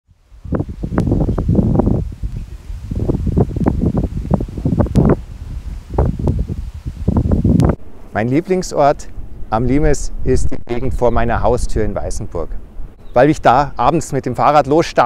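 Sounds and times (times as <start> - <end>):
gusty wind: 0.1 - 15.0.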